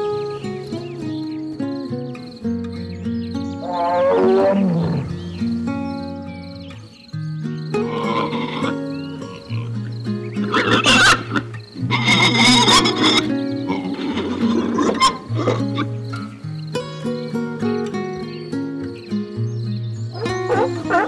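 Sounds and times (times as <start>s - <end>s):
piglets squealing: 7.8s - 9.7s, 10.4s - 15.9s.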